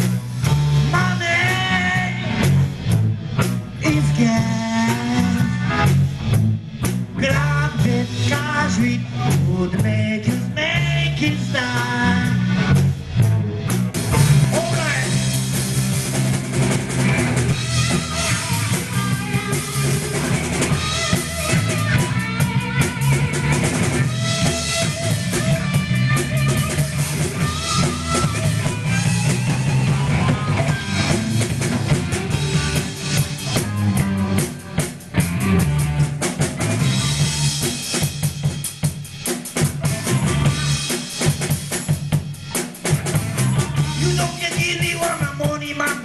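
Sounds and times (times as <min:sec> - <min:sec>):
bass guitar: 0:00.0 - 0:46.0
drum kit kick and snare: 0:00.0 - 0:46.0
electric guitar: 0:00.0 - 0:46.0.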